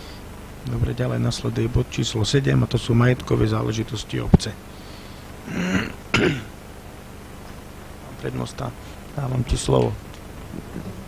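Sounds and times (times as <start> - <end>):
person clearing throat: 5.4 - 6.5.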